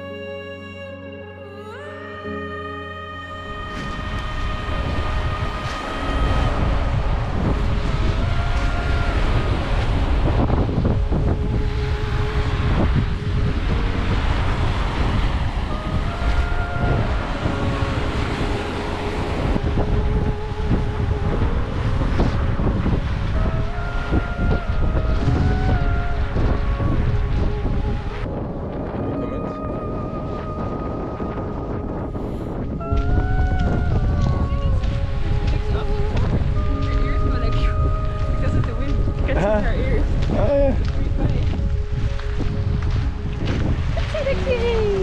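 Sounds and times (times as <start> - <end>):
slow background music: 0.0 - 45.0
wind buffeting microphone: 3.5 - 45.0
surf washing onto shore: 3.7 - 45.0.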